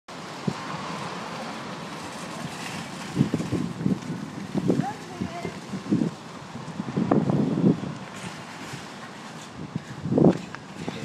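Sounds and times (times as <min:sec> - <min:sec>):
wind on phone microphone: 0:02.3 - 0:11.0
footsteps on asphalt: 0:07.9 - 0:11.0.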